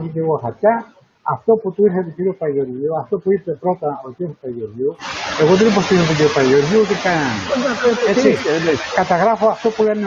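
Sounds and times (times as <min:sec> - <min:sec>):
men speaking over a call: 0:00.0 - 0:10.0
steady hiss: 0:00.0 - 0:10.0.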